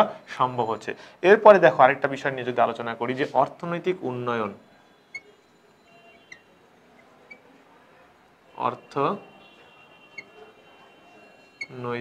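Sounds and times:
marker squeaking on glass board: 5.0s - 7.6s, 10.0s - 10.6s, 11.2s - 11.8s.

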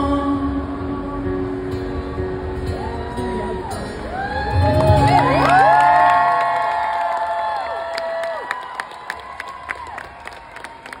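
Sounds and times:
audience cheering and whooping: 2.8s - 11.0s
scattered clapping: 5.1s - 11.0s.

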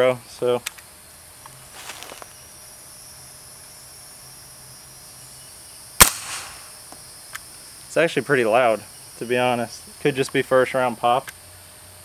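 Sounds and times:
suppressed gunshot with echo: 6.0s - 6.7s.

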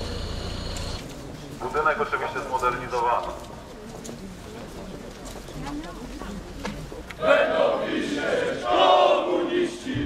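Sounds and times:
crowd background noise: 0.0s - 10.0s.

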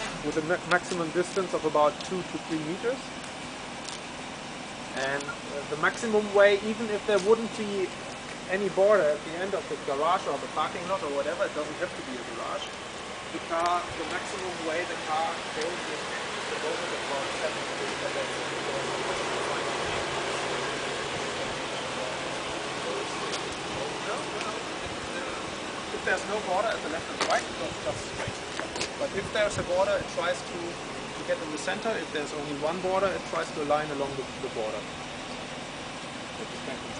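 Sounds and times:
car engine idling hiss: 0.0s - 36.9s.

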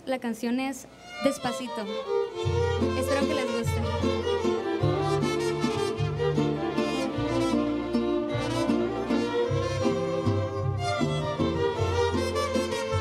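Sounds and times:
mariachi violins playing melody: 1.0s - 13.0s
string orchestra: 1.0s - 13.0s
bass line: 2.4s - 13.0s.

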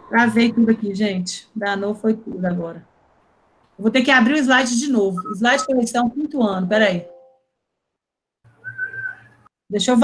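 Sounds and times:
low hum: 0.0s - 7.3s
steady high tone: 4.5s - 6.2s.

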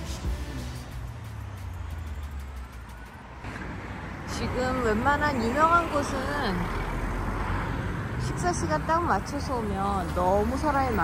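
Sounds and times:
car engines rumbling: 0.0s - 11.0s.

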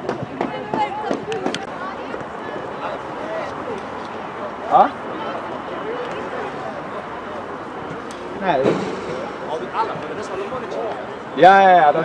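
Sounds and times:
voices shouting outdoors: 0.0s - 12.0s.

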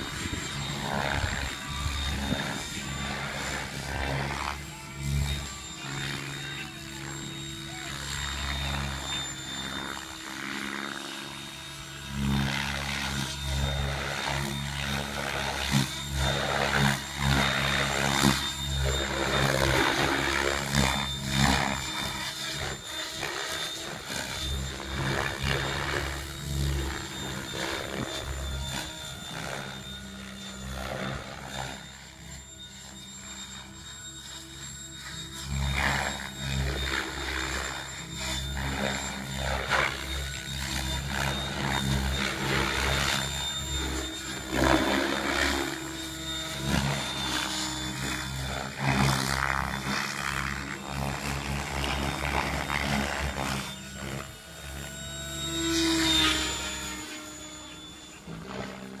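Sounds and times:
rc helicopter rotor hum and whine: 0.0s - 59.0s.

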